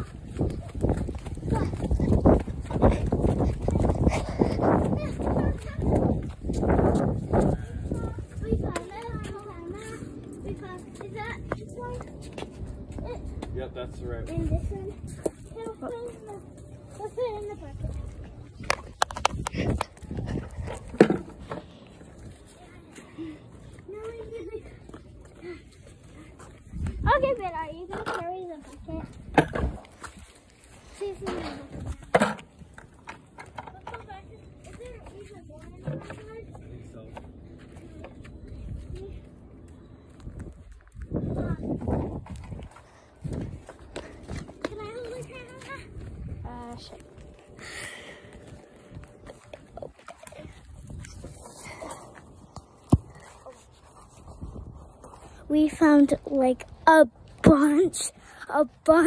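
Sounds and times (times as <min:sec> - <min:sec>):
footsteps on mulch and grass: 0:00.0 - 0:13.5, 0:14.2 - 0:27.8, 0:28.4 - 0:33.0, 0:34.1 - 0:59.0.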